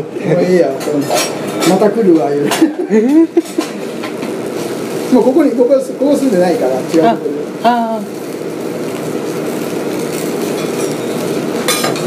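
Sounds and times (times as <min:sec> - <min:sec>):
restaurant kitchen background noise: 0:00.0 - 0:12.0.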